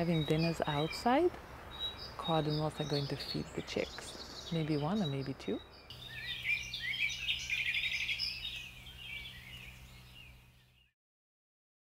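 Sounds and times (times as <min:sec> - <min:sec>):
songbirds chirping: 0:00.0 - 0:10.9.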